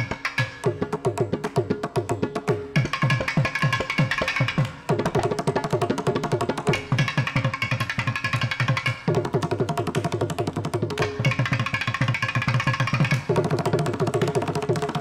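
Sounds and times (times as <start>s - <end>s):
fast hand drum strokes: 0.0s - 15.0s.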